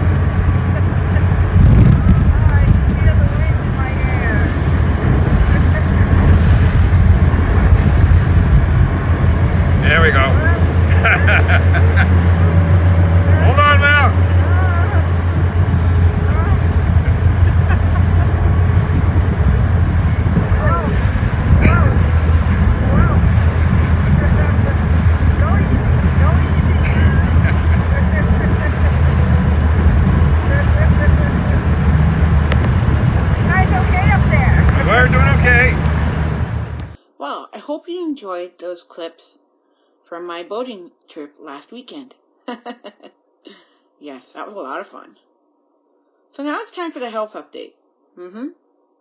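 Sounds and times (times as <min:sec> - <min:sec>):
rushing water: 0:00.0 - 0:36.9
motorboat engine rumble: 0:00.0 - 0:37.0
wind noise: 0:00.0 - 0:37.0
voices: 0:00.0 - 0:39.4, 0:40.1 - 0:45.2, 0:46.4 - 0:48.6.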